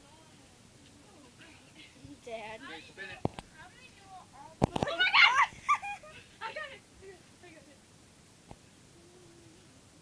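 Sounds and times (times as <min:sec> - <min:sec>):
person shouting excitedly: 0:04.9 - 0:05.5.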